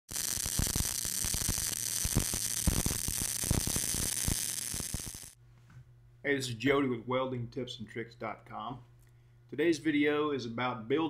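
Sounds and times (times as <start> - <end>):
welding arc crackling and hissing: 0.0 - 5.4.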